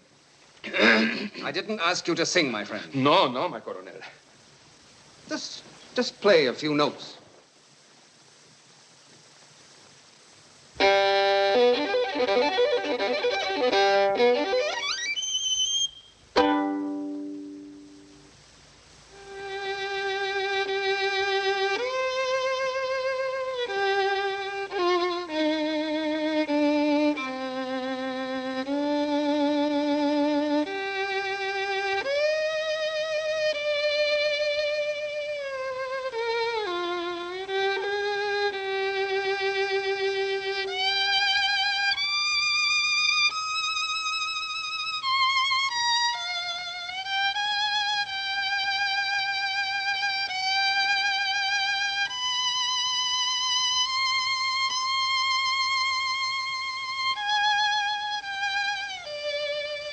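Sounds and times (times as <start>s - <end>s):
solo violin slow melody: 0.0s - 0.9s, 8.6s - 59.9s.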